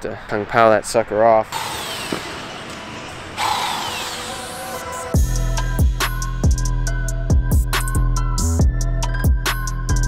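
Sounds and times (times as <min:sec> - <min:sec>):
angle grinder whining: 0:01.5 - 0:05.8.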